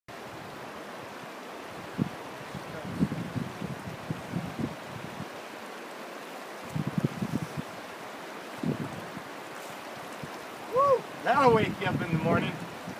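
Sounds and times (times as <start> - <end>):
river water rushing: 0.1 - 12.9.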